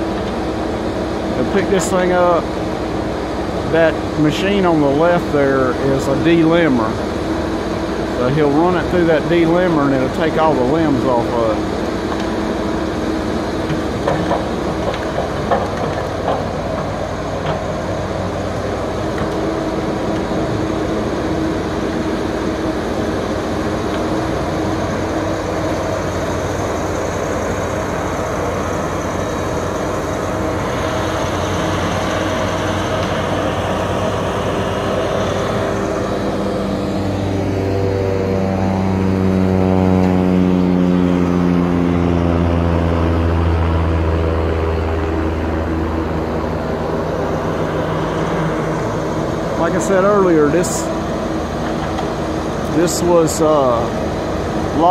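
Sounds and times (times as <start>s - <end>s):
diesel engine running: 0.0s - 54.9s.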